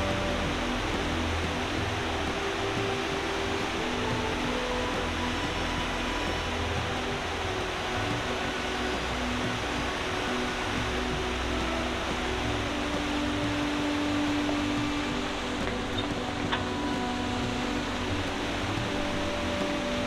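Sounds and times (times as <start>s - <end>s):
faint background music: 0.0s - 20.0s
whitewater river rushing: 0.0s - 20.0s.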